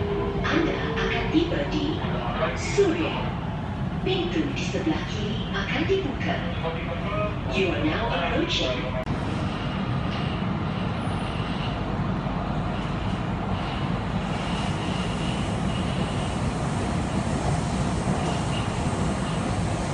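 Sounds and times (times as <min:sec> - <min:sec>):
metro train rumbling: 0:00.0 - 0:19.9.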